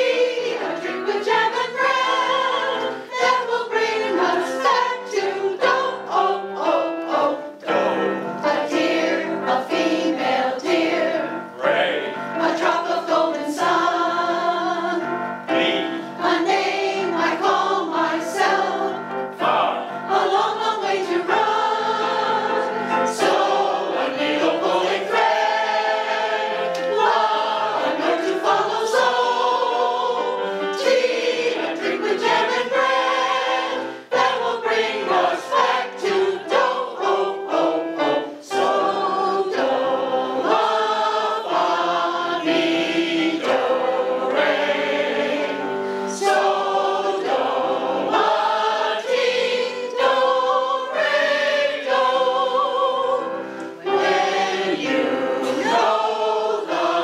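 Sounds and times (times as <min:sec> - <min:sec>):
keyboard piano: 0:00.0 - 0:57.0
mixed choir singing: 0:00.0 - 0:57.0.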